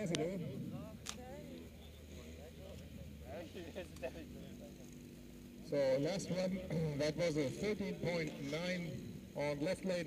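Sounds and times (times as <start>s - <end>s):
cars idling rumble: 0.0s - 10.0s
spectators chatting: 0.0s - 10.0s.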